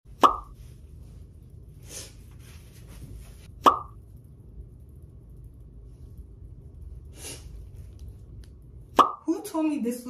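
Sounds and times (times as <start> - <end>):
pop sound effects: 0.2 - 0.5, 3.6 - 4.0, 8.9 - 9.2.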